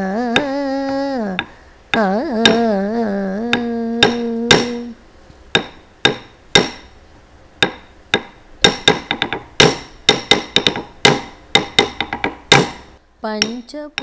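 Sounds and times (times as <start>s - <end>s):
wooden stick striking wooden block: 1.4s - 2.7s, 3.5s - 4.9s, 5.5s - 6.9s, 7.6s - 14.0s.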